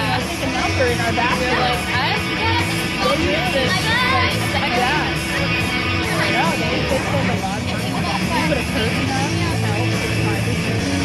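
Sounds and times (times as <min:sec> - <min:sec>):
people calling out: 0:00.0 - 0:10.7.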